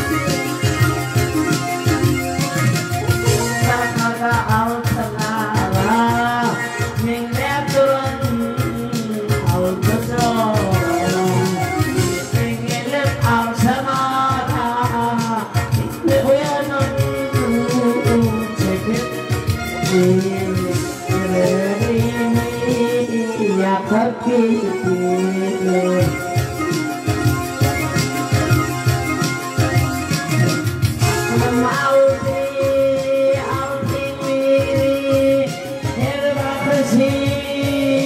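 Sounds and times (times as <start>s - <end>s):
electronic keyboard folk tune: 0.0s - 38.0s
rhythmic bass accompaniment: 0.0s - 38.0s.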